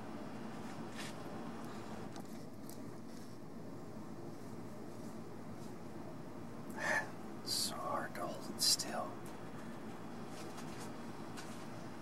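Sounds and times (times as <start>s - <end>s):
person whispering: 6.8s - 9.2s.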